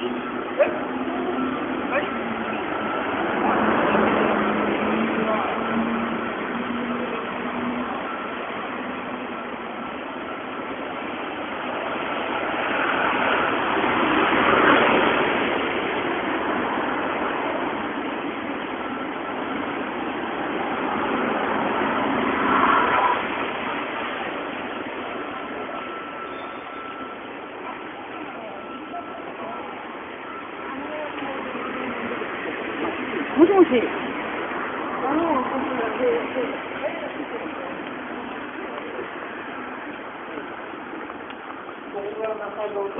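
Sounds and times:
cars passing on road: 0.0s - 42.9s.

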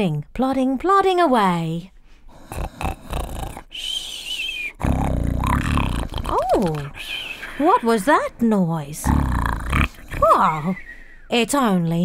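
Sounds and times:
person snoring comically: 2.3s - 3.8s, 4.7s - 7.0s, 9.0s - 10.8s
wavering high whistle: 3.8s - 4.8s.

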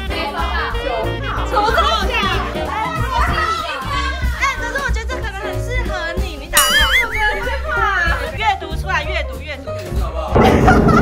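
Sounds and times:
people talking excitedly: 1.3s - 10.3s.

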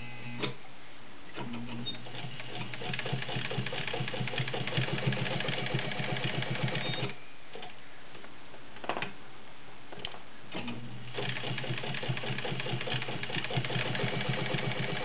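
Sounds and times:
sewing machine stitching: 1.4s - 7.2s, 10.6s - 15.0s.

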